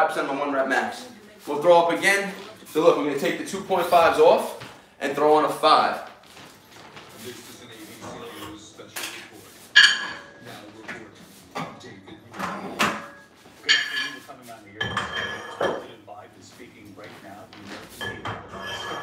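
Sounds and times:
weight plates clanking: 9.8s - 10.5s, 11.6s - 15.9s, 17.9s - 19.0s.

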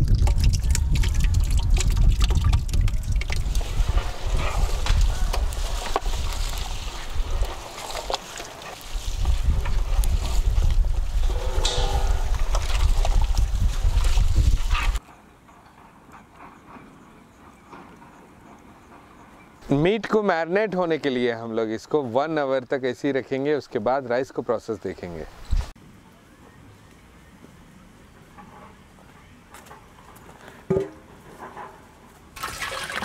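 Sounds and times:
wet squelching and sloshing: 0.0s - 9.3s
heavy low rumble: 10.4s - 13.7s.

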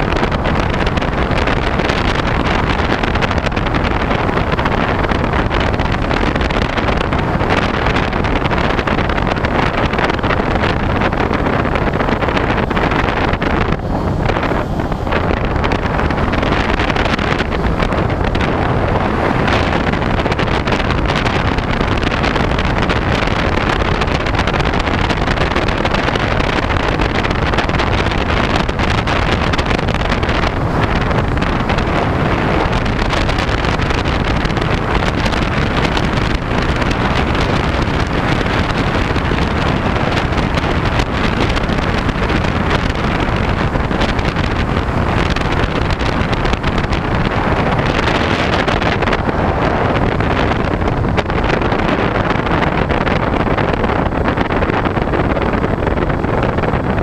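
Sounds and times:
wind rushing on microphone: 0.0s - 57.0s.

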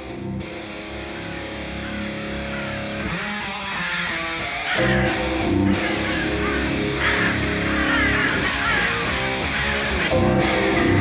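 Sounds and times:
power metal music: 0.0s - 11.0s
sustained electric guitar chords: 0.0s - 11.0s
raven cawing: 0.9s - 11.0s.

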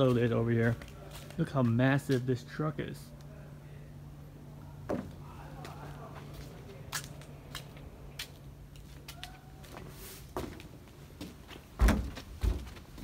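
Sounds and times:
footsteps on metal ramp: 6.2s - 13.0s
heavy thumps: 11.8s - 13.0s.

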